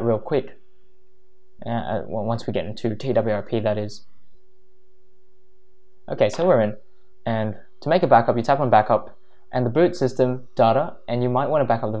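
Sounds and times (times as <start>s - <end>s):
steady pure tone: 0.0s - 12.0s.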